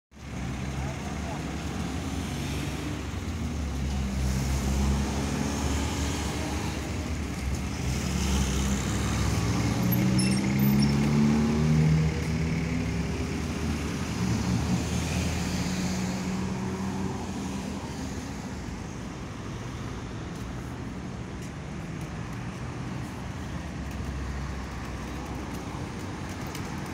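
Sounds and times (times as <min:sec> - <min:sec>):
traffic engine hum and tyre noise: 0:00.1 - 0:26.9
car passing close: 0:00.7 - 0:18.2.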